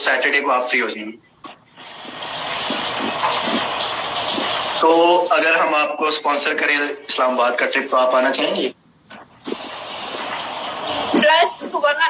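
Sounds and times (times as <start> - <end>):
steady rushing noise: 1.8 - 5.2, 9.1 - 12.0.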